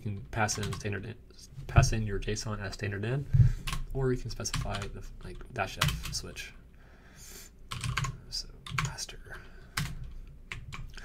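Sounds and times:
computer keyboard keys clicking: 0:04.5 - 0:04.9, 0:05.8 - 0:06.2, 0:07.7 - 0:09.0, 0:09.8 - 0:11.0.

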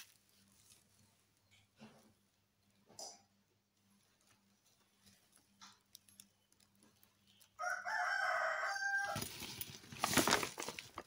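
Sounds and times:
rooster crowing: 0:07.6 - 0:09.3.

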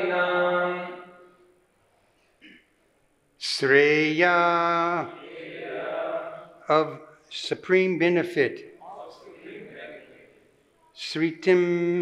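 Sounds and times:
group of voices chanting: 0:05.0 - 0:06.6, 0:09.0 - 0:10.4.

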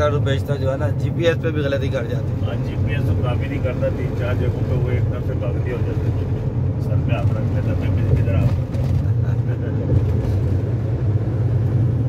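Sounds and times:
vehicle cabin engine and road rumble: 0:00.0 - 0:12.0.

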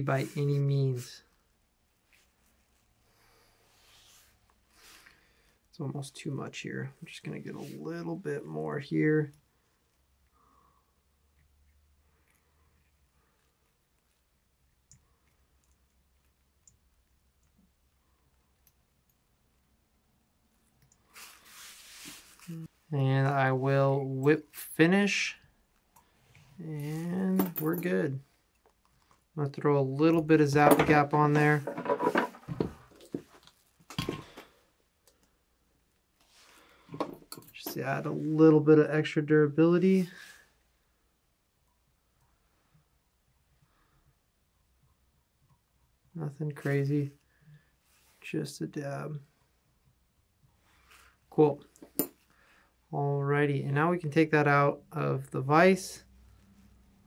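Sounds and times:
handling clicks and rustles: 0:36.8 - 0:38.2.

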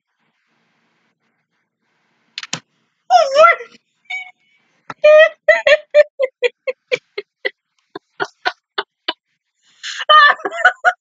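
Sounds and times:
woman laughing: 0:04.9 - 0:09.2, 0:09.8 - 0:11.0.

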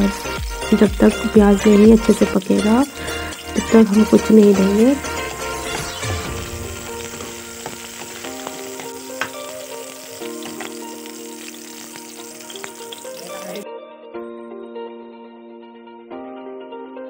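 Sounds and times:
onions sizzling in hot oil: 0:00.0 - 0:13.6.

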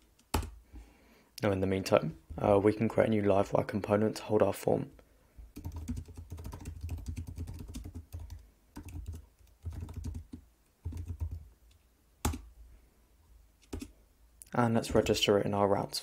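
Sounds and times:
computer keyboard typing: 0:00.2 - 0:00.6, 0:05.5 - 0:11.4, 0:13.6 - 0:13.9.

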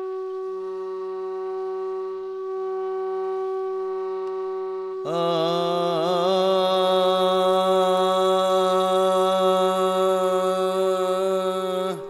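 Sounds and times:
flute-like held note: 0:00.0 - 0:12.0
low sustained drone: 0:00.0 - 0:12.0.

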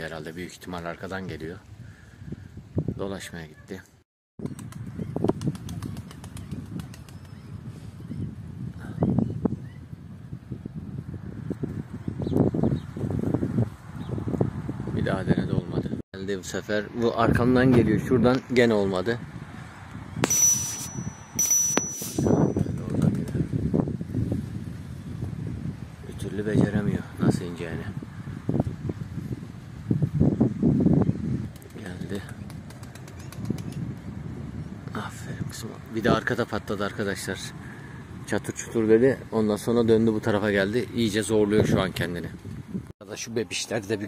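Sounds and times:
wind rumble on microphone: 0:00.0 - 0:03.6, 0:04.4 - 0:42.9
pigeon wings flapping: 0:04.4 - 0:07.4, 0:31.4 - 0:34.1
high bell-like ding: 0:20.2 - 0:22.7.

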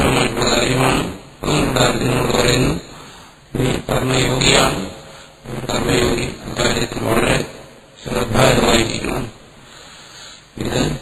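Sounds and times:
man's voice: 0:00.0 - 0:09.4, 0:10.5 - 0:11.0
steady background hiss: 0:00.0 - 0:11.0.

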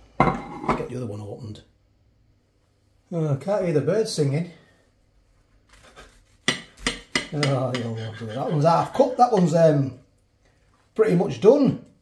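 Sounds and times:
knife clinking on ceramic plate: 0:06.5 - 0:09.6
bread knife sawing through pastry: 0:07.4 - 0:09.5.

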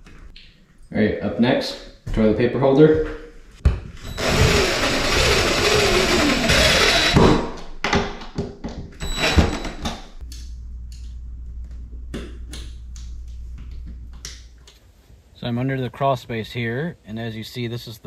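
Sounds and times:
impact driver driving screw: 0:04.1 - 0:07.5
low steady hum: 0:09.1 - 0:18.0.

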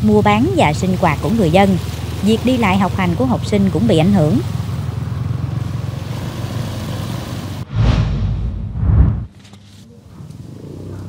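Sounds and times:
deep rumbling whoosh effect: 0:07.6 - 0:09.3.

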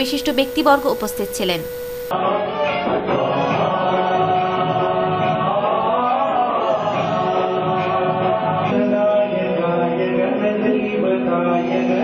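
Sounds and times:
voices chanting in chorus: 0:02.1 - 0:12.0.

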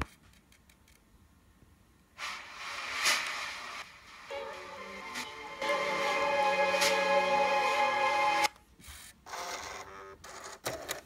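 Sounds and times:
hissing noise: 0:02.2 - 0:08.5.

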